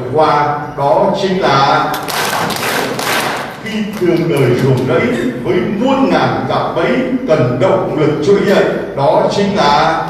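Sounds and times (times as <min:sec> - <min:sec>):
large audience clapping: 0:01.9 - 0:05.0.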